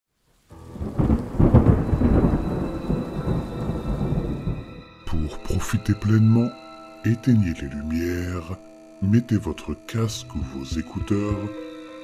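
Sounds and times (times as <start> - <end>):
steady rain: 0.1 - 4.8
thunder rumbling: 0.5 - 4.9.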